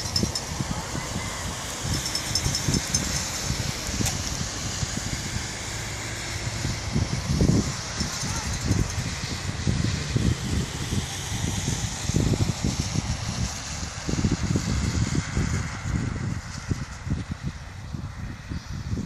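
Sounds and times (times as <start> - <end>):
wind buffeting the microphone: 0.0 - 19.0.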